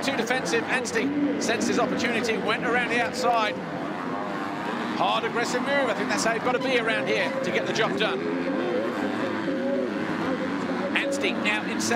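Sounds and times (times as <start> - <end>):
motorbike engines revving: 0.0 - 11.9.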